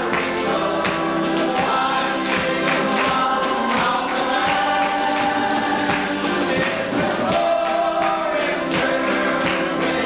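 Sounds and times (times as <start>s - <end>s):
congregation singing gospel song: 0.0s - 10.0s
hand claps: 0.0s - 10.0s.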